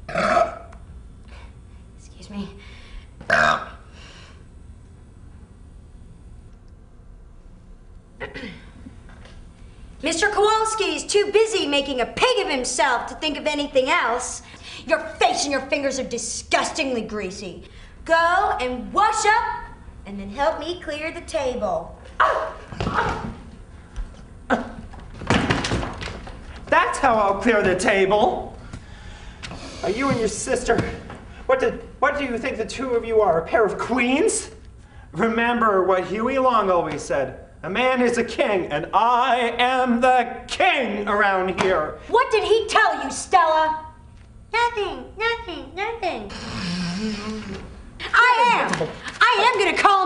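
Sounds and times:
woman burping loudly: 0:00.0 - 0:00.7, 0:03.3 - 0:03.8.

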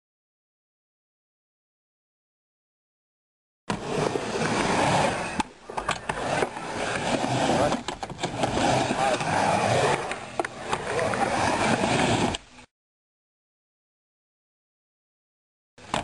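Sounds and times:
skateboard wheels rolling: 0:03.7 - 0:12.5, 0:15.8 - 0:16.0.

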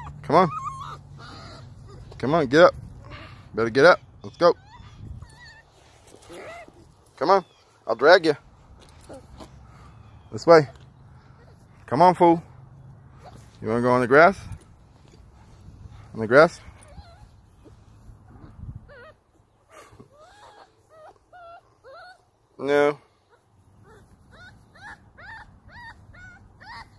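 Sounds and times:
puppy whining: 0:00.0 - 0:02.2, 0:04.2 - 0:07.7, 0:08.8 - 0:11.6, 0:16.6 - 0:22.4, 0:23.3 - 0:26.9.

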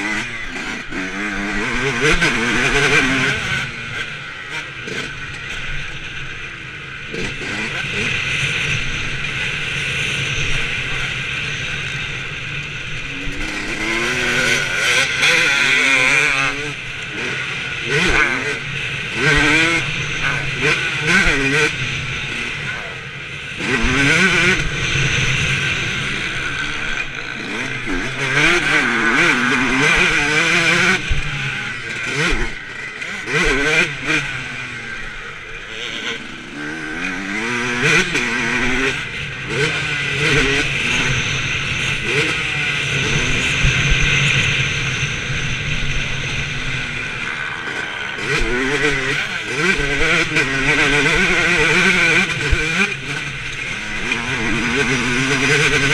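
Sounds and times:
dirt bike engine revving: 0:00.0 - 0:55.9.

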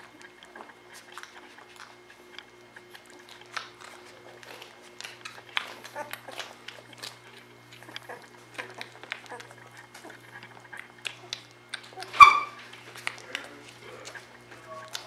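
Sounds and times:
puppies suckling: 0:00.0 - 0:15.0
steady low hum: 0:00.0 - 0:15.0.

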